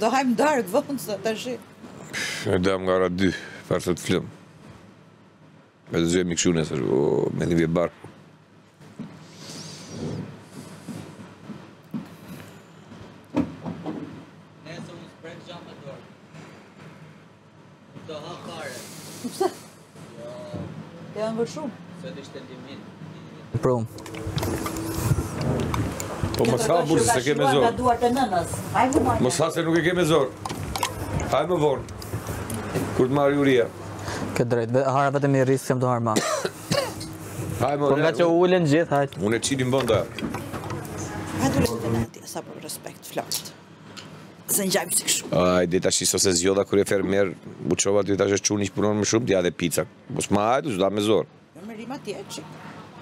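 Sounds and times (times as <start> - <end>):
low room murmur: 0.0 - 53.0
person clearing throat: 36.2 - 37.1.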